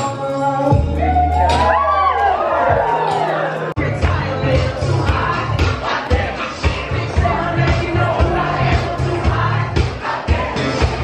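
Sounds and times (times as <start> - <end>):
crowd singing and shouting: 0.0 - 11.0
loud dance music: 0.0 - 11.0.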